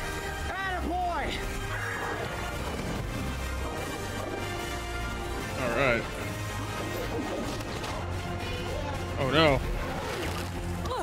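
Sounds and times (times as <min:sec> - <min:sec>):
film background score: 0:00.0 - 0:11.0.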